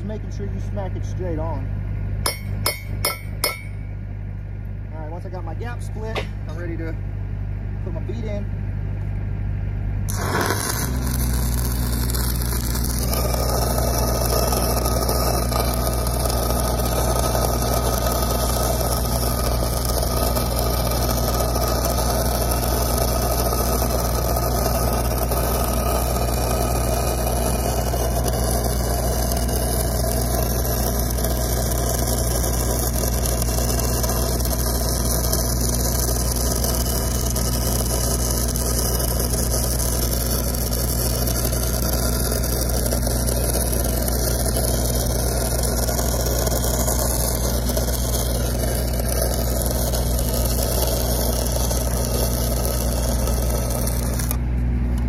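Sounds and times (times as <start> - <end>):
engine running: 0.0 - 55.0
welding arc crackling: 10.1 - 55.0.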